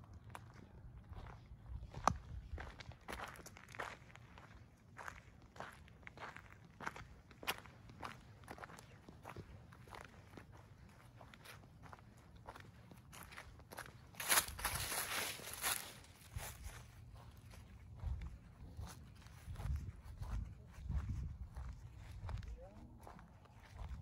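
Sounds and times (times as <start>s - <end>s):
footsteps on dry grass and leaves: 7.5s - 24.0s.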